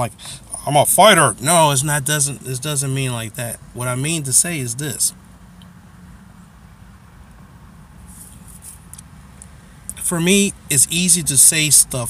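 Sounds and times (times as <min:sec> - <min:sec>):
car cabin hum: 0:00.0 - 0:12.0
faint short rustles: 0:08.0 - 0:09.1.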